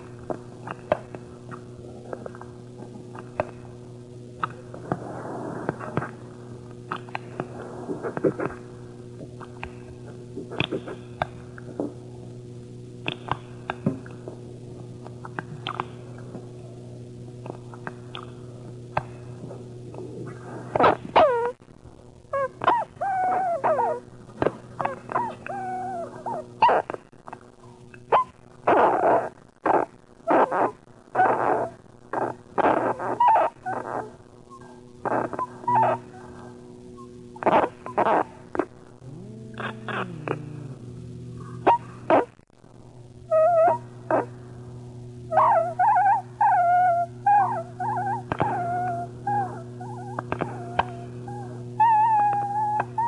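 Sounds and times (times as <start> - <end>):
steady low drone: 34.4 - 53.0.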